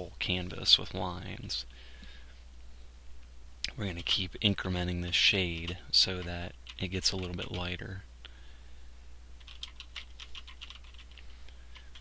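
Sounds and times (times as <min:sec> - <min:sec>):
faint keyboard typing: 0:03.7 - 0:04.3, 0:05.4 - 0:07.9, 0:09.4 - 0:12.0.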